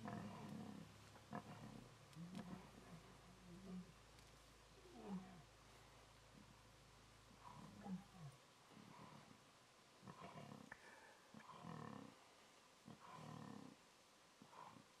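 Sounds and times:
faint lion growls: 0:00.0 - 0:15.0.

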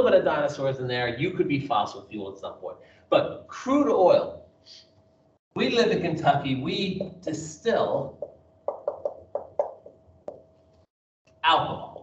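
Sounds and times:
marker writing on whiteboard: 0:08.1 - 0:10.4.

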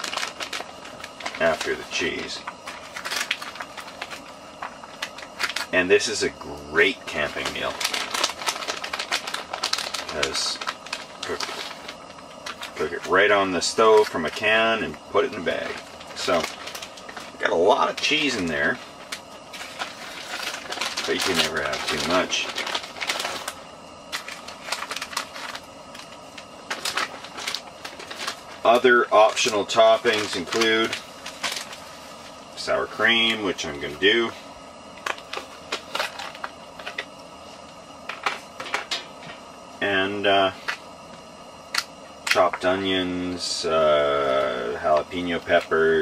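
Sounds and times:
plastic bag crinkling: 0:00.0 - 0:06.2, 0:06.8 - 0:34.0, 0:35.0 - 0:37.2.

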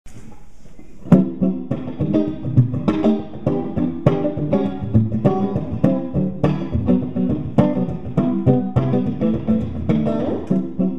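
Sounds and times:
clean electric guitar notes: 0:01.1 - 0:10.9.

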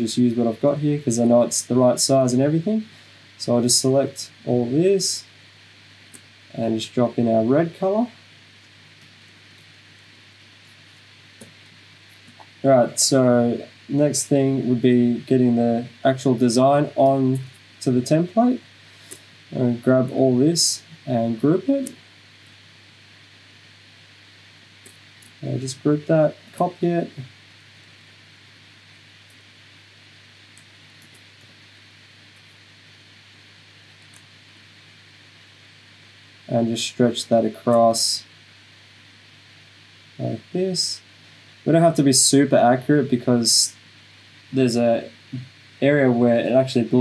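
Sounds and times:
person narrating: 0:00.0 - 0:05.3, 0:06.5 - 0:08.2, 0:12.6 - 0:18.7, 0:19.5 - 0:22.0, 0:25.4 - 0:27.3, 0:36.5 - 0:38.3, 0:40.2 - 0:43.8, 0:44.6 - 0:47.0
room hiss and hum: 0:00.0 - 0:47.0.

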